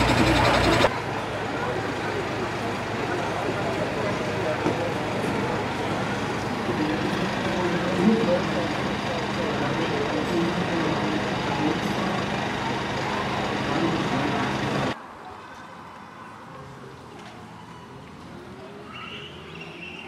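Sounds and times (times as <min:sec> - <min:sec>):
engine running steadily: 0:00.0 - 0:15.0
people talking: 0:00.0 - 0:20.0.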